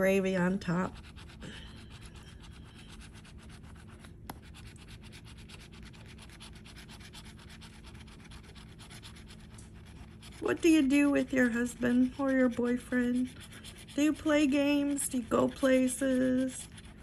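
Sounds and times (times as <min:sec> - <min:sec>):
scratcher scraping lottery ticket: 0:00.7 - 0:17.0.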